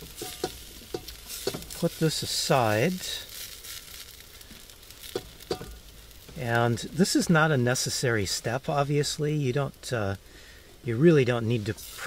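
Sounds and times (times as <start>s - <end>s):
vegetables sizzling faintly: 0.0s - 12.0s.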